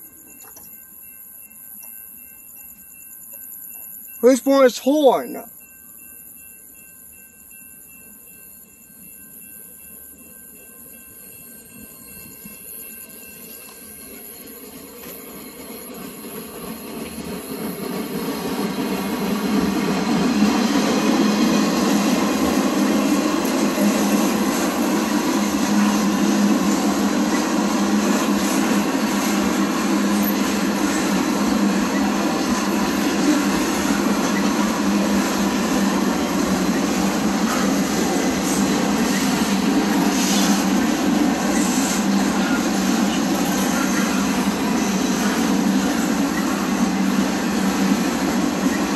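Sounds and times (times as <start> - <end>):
freight train passing: 0.0 - 48.9.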